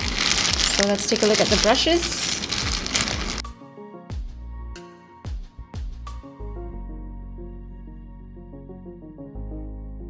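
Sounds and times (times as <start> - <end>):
plastic wrapping crinkling: 0.0 - 3.4
background music with struck notes: 3.4 - 10.0.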